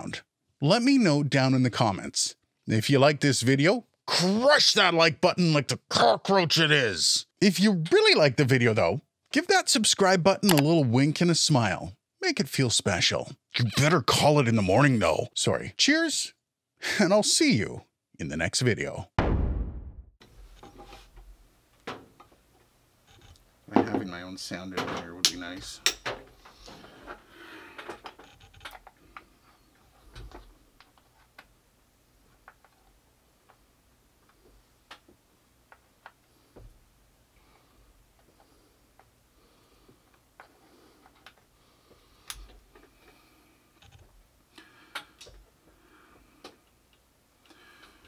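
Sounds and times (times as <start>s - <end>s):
dull thump: 19.2s - 20.1s.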